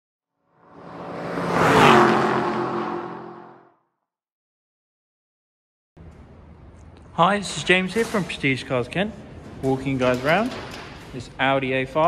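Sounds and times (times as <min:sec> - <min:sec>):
car engine passing by: 0:00.6 - 0:03.7.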